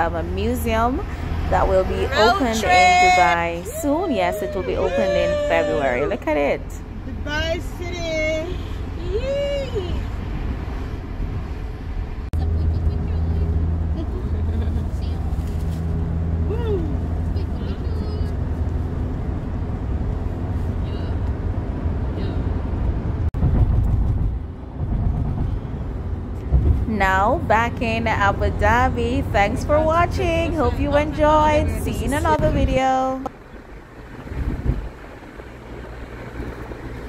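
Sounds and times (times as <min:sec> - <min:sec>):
car interior road rumble: 0:00.0 - 0:37.0.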